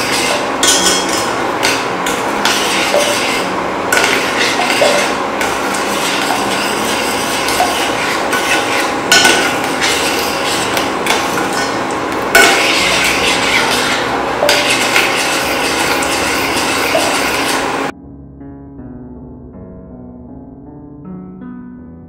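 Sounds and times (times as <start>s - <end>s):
metal spoon scraping a pot: 0.0s - 17.9s.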